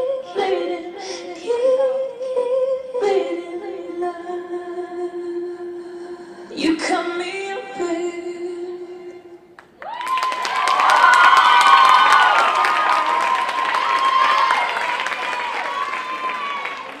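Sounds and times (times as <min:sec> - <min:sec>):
audience applause: 0:09.8 - 0:17.0
high-pitched cheers: 0:09.8 - 0:17.0.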